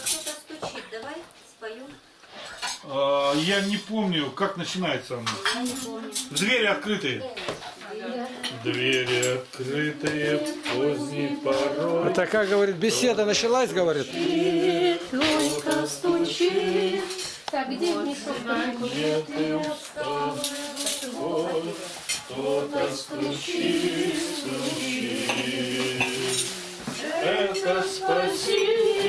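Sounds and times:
dishes and cutlery clattering: 0.0 - 0.7, 2.3 - 2.9, 5.2 - 12.4, 15.0 - 18.5, 19.2 - 22.4, 23.2 - 29.0
group singing a slow hymn: 7.8 - 13.0, 13.9 - 29.0.

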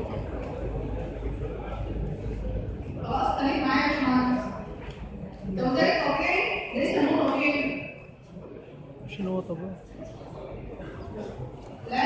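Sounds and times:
quiet indistinct speech: 0.0 - 12.0
room noise: 0.0 - 12.0.

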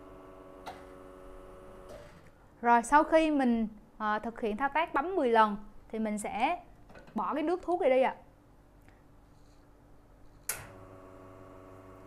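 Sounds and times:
espresso machine pump hum: 0.0 - 2.2, 10.7 - 12.0.

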